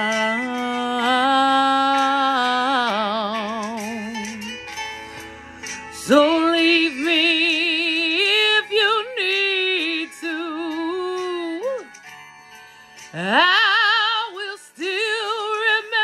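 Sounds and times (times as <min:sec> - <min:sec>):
woman singing with vibrato: 0:00.0 - 0:04.6, 0:05.9 - 0:12.0, 0:13.1 - 0:16.0
guitar accompaniment: 0:00.0 - 0:16.0.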